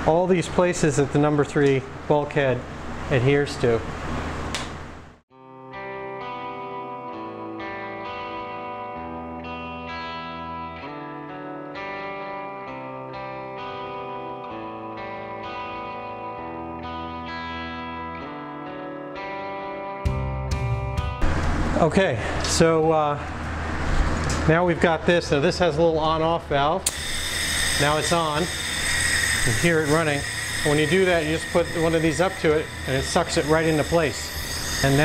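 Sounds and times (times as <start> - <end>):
background music with sustained chords: 5.4 - 21.3.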